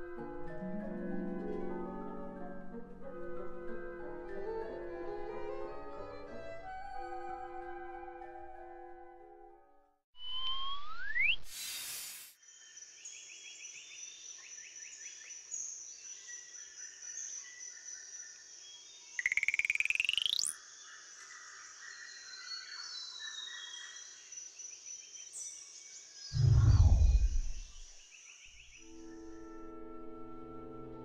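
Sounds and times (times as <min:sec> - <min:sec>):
low falling whoosh: 0:26.4 - 0:27.9
rising buzzing glide: 0:26.4 - 0:27.9
steady high whine: 0:26.4 - 0:27.9.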